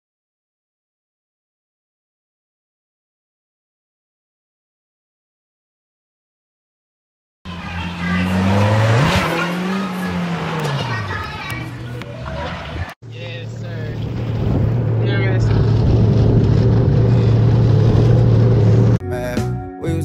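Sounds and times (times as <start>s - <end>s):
voices: 7.5s - 14.0s
vehicle engine revving: 7.5s - 19.0s.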